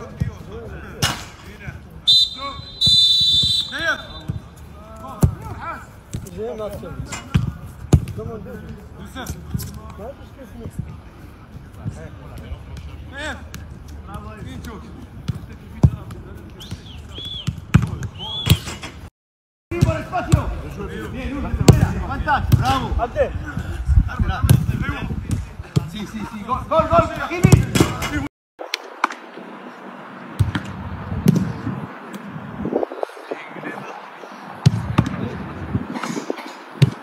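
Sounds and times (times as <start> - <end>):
short whistle blast: 2.1 - 4.3.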